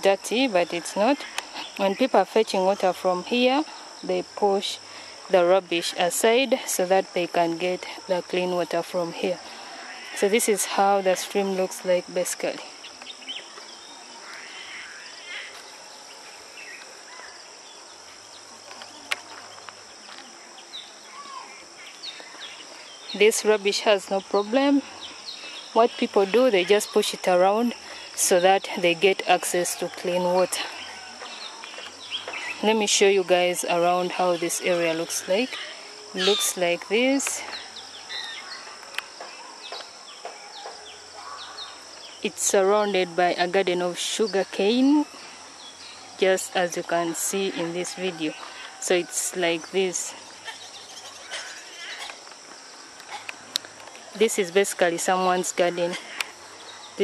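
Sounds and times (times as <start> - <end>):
birds chirping: 0.0 - 57.0
high-pitched insect chorus: 0.0 - 57.0.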